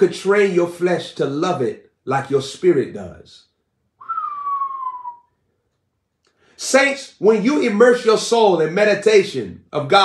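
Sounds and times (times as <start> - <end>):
man whistling falling note: 4.0 - 5.5.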